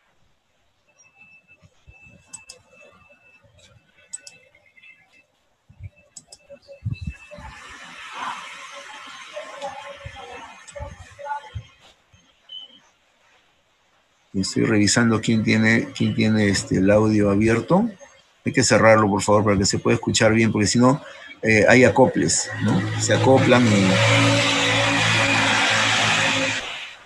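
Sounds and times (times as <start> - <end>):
faint clicks: 3.6 - 6.6
hiss-like noise: 5.8 - 27.0
thin high tone: 14.4 - 27.0.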